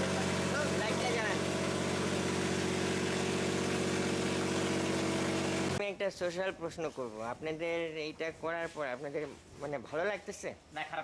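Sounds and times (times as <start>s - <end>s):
engine humming steadily: 0.0s - 5.8s.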